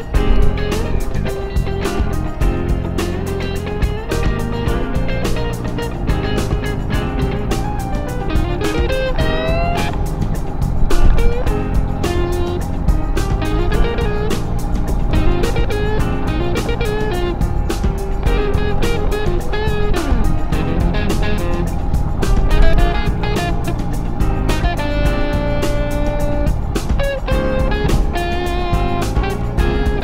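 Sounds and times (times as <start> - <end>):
electric guitar melody: 0.0 - 30.0
steady drum beat: 0.0 - 30.0.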